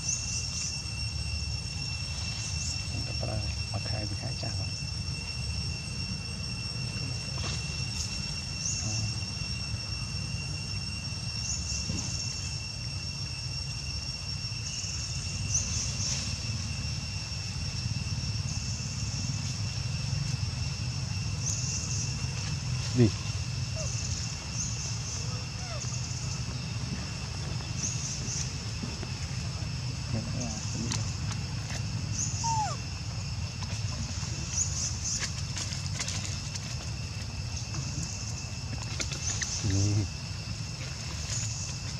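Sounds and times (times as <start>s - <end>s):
insect buzzes: 0.0s - 41.9s
insects high-pitched whine: 0.0s - 41.9s.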